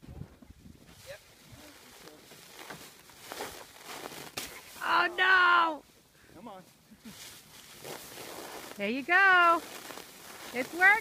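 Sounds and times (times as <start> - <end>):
plastic sheet crinkling: 1.6 - 4.8, 7.6 - 11.0.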